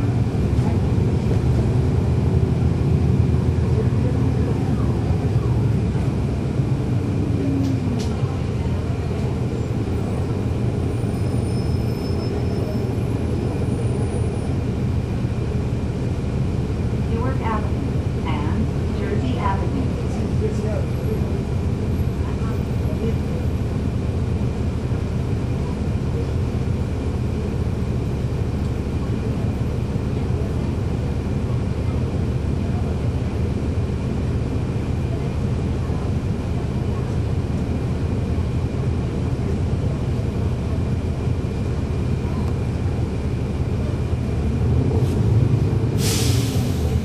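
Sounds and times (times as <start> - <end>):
diesel bus engine running: 0.0 - 47.0.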